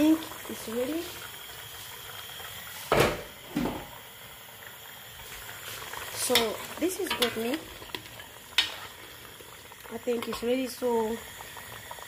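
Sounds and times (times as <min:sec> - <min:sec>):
pot of meat simmering: 0:00.0 - 0:12.0.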